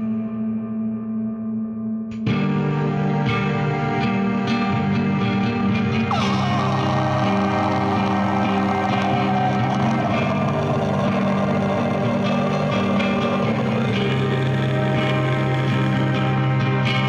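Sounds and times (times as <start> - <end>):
droning metal guitar chords: 0.0 - 17.0.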